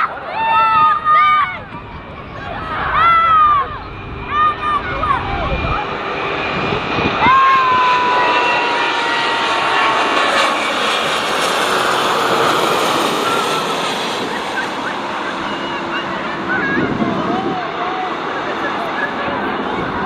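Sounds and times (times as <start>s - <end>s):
high whine sliding down: 0.0s - 18.1s
jet engines rushing overhead: 0.0s - 20.0s.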